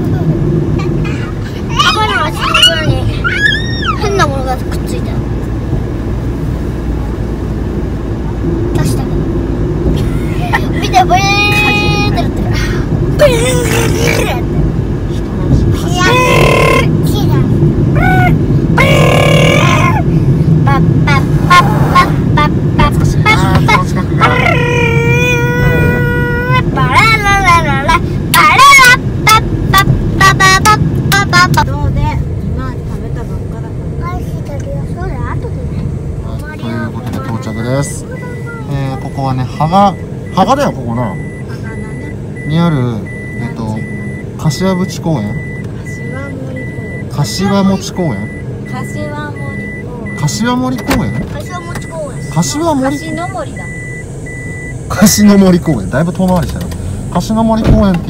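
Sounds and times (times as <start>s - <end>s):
car road and engine rumble: 0.0s - 58.0s
voices talking and calling out: 0.0s - 58.0s
faint high beep: 37.4s - 55.4s.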